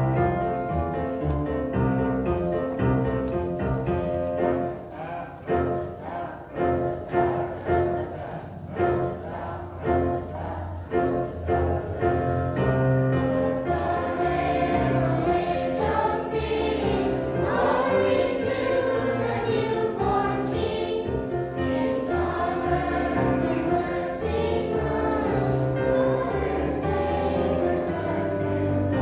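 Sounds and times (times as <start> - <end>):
low instrumental accompaniment: 0.0 - 4.9, 9.1 - 29.0
children's choir singing: 0.0 - 29.0.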